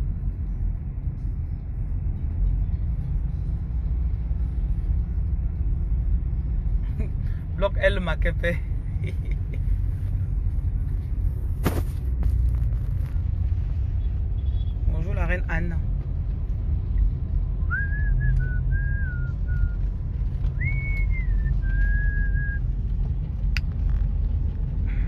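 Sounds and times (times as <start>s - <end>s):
car road and engine rumble: 0.0s - 25.0s
person whistling a tune: 17.6s - 19.8s, 20.5s - 22.6s.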